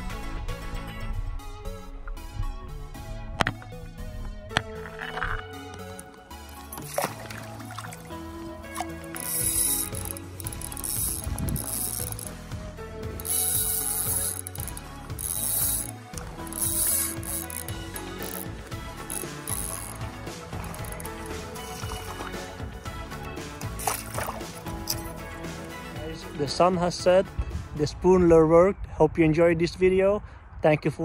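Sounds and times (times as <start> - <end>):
background music: 0.0 - 28.6
fishing reel clicking and whirring: 8.7 - 25.7.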